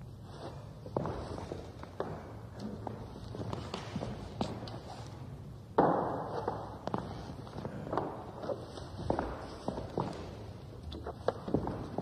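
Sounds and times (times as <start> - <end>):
low room noise: 0.0 - 12.0
footsteps on floor: 0.3 - 5.2, 5.8 - 12.0.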